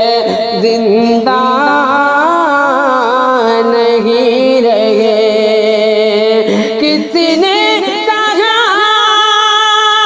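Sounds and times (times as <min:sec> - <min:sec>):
solo voice singing: 0:00.0 - 0:10.0.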